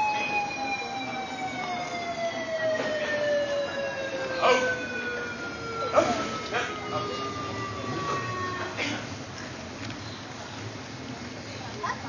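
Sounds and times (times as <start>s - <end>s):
siren falling in pitch: 0.0s - 8.8s.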